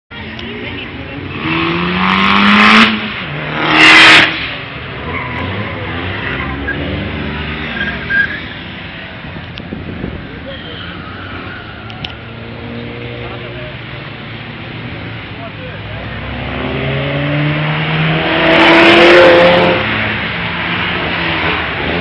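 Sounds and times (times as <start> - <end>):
car engines revving: 0.1 - 22.0
tyre squeal: 7.6 - 8.7, 10.4 - 12.0.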